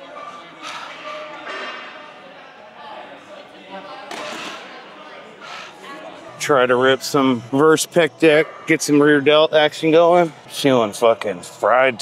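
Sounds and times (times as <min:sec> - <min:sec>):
quiet breathing: 0:00.5 - 0:01.3, 0:04.2 - 0:06.2.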